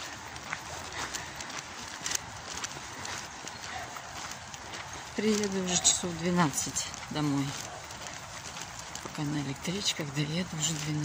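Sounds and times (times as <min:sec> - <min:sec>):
footsteps on leaves and dirt: 0:00.0 - 0:11.0.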